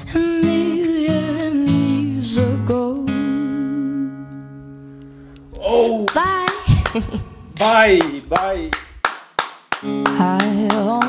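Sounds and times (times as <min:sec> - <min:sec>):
girl singing with vibrato: 0:00.0 - 0:04.4, 0:05.7 - 0:07.5, 0:10.1 - 0:11.0.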